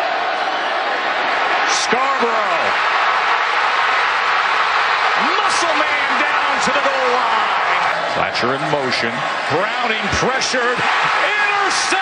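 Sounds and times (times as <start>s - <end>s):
stadium crowd cheering: 0.0s - 12.0s
commentator speaking: 1.6s - 2.8s, 5.2s - 12.0s.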